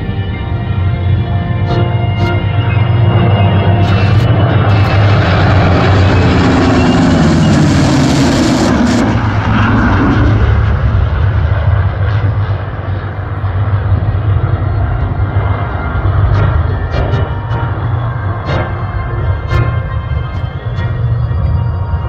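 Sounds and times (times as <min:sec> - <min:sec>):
jet roar: 0:00.0 - 0:22.0
piston aircraft engines: 0:00.0 - 0:22.0.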